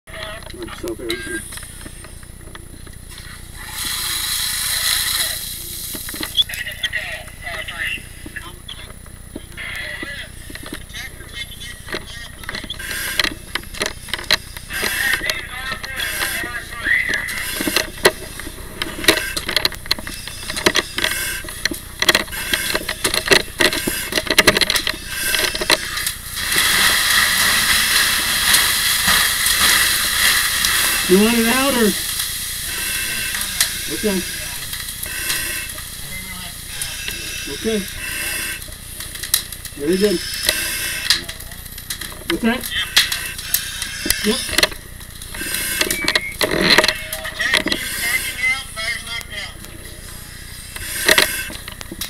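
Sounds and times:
muffled voices: 0:00.1 - 0:52.0
loud hiss: 0:03.5 - 0:06.1, 0:25.0 - 0:38.6
hose spraying water: 0:03.5 - 0:06.4, 0:12.8 - 0:13.4, 0:14.4 - 0:19.4, 0:25.0 - 0:38.7, 0:42.4 - 0:46.0, 0:46.9 - 0:49.4, 0:50.2 - 0:51.7
gear knocking and clattering: 0:11.7 - 0:36.0.

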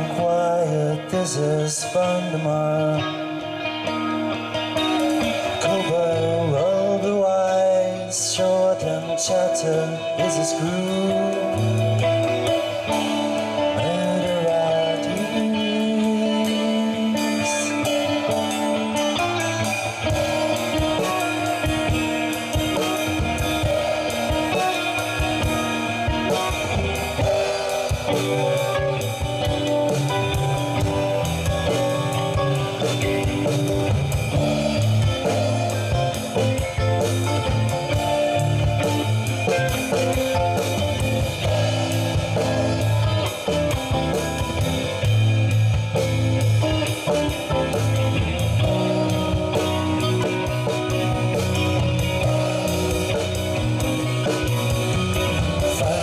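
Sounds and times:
drum kit: 0:00.0 - 0:56.0
electric bass: 0:00.0 - 0:56.0
electric guitar: 0:00.0 - 0:56.0.

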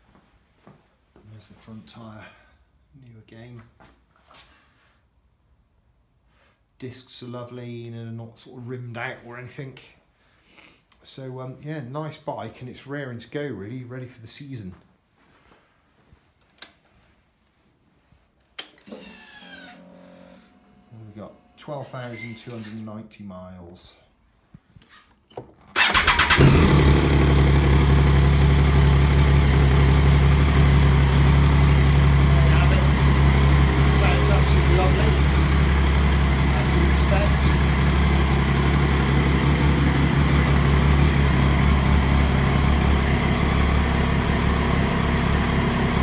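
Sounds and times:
motorcycle engine starting and idling: 0:25.7 - 0:46.0.

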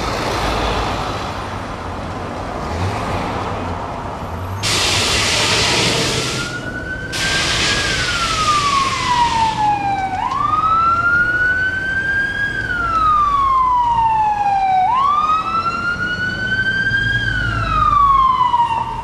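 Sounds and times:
burst of hiss: 0:04.6 - 0:06.5, 0:07.2 - 0:09.6
emergency siren wailing: 0:04.7 - 0:19.0.

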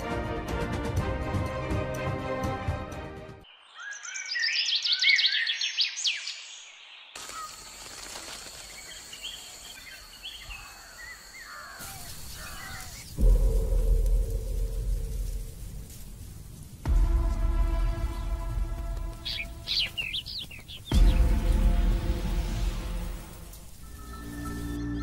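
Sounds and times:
background music: 0:00.0 - 0:03.5, 0:16.8 - 0:25.0
high chirping bird calls: 0:19.1 - 0:21.5.

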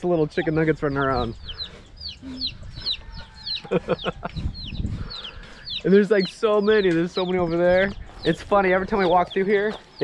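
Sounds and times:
baby chicks peeping: 0:00.0 - 0:10.0.

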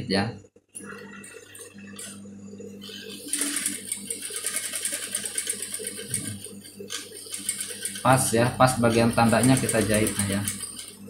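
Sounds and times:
sewing machine humming: 0:02.8 - 0:11.0
sewing machine needle stitching: 0:02.8 - 0:11.0.

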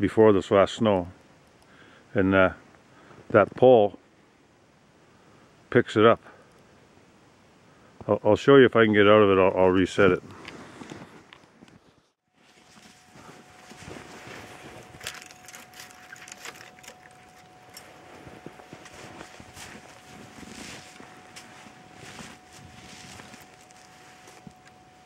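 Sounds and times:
footsteps crunching through snow: 0:12.3 - 0:24.9
faint steady high tone: 0:12.3 - 0:25.0.

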